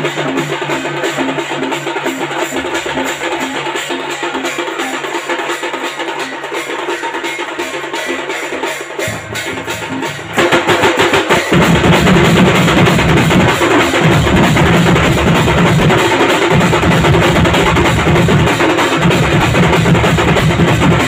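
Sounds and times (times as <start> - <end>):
street percussion band drumming: 0.0 - 21.0.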